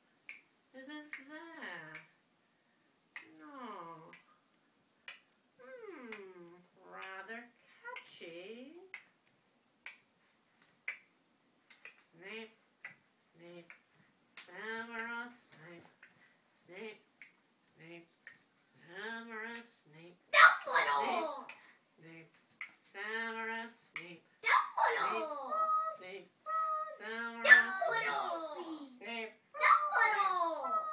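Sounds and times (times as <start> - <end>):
child's wordless voice: 20.4 - 21.6, 24.4 - 29.0, 29.6 - 30.9.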